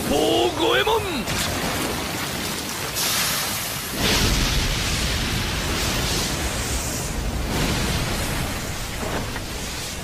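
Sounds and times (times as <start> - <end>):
fire blast rushing: 3.8 - 10.0.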